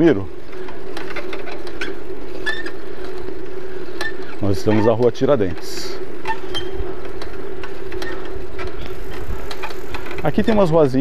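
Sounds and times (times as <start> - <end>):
bicycle whirring and rattling: 0.0 - 11.0.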